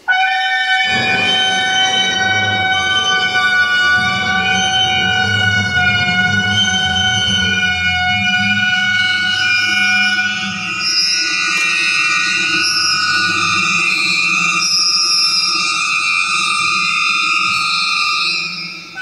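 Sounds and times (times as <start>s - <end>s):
sustained high chamber tones: 0.7s - 19.0s.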